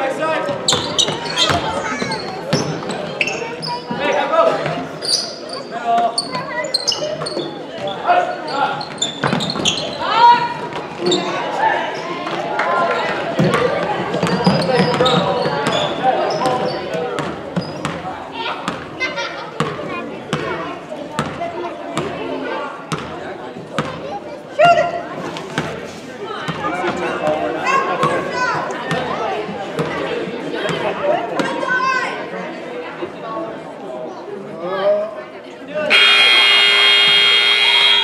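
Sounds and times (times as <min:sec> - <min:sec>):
scoreboard buzzer: 0:35.9 - 0:38.0.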